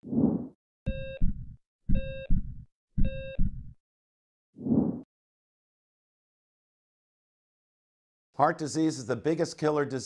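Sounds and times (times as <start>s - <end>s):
short electronic beep: 0.9s - 1.2s, 3.0s - 3.4s
heartbeat double thumps: 0.9s - 3.8s.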